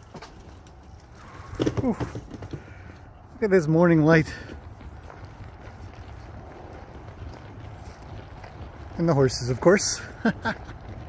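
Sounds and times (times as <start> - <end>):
wind noise on microphone: 0.0 - 11.0
steady low rumble: 2.6 - 11.0.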